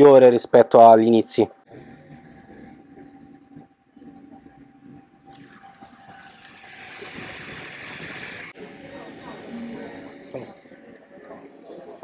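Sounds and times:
printer thin whine: 5.3s - 8.7s
rushing noise: 5.4s - 12.0s.

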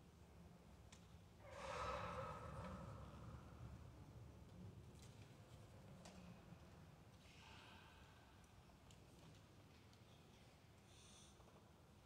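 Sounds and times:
person exhaling breathily: 1.4s - 3.1s.

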